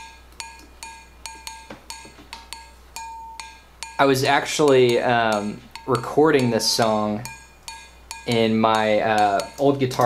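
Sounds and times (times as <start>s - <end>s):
cowbell struck in a pattern: 0.0s - 9.8s.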